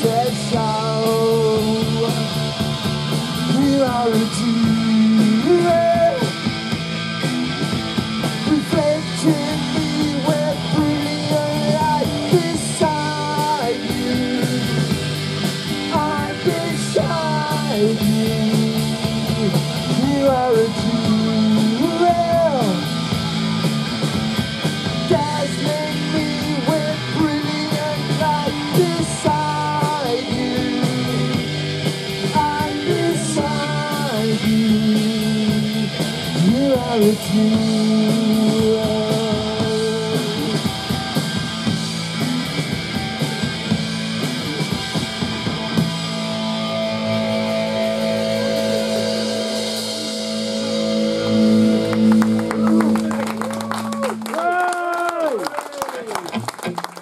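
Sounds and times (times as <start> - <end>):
person singing lead vocal: 0.0 - 6.9, 8.2 - 23.2, 24.9 - 41.3
punk rock band playing: 0.0 - 57.0.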